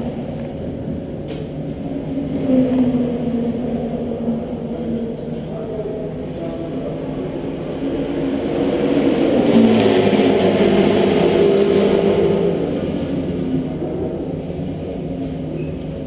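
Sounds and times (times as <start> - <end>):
racing car engine: 7.4 - 15.4.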